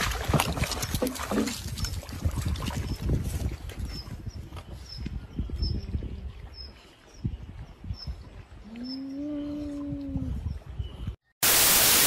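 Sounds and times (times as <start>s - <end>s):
water splashing and churning: 0.0s - 3.9s.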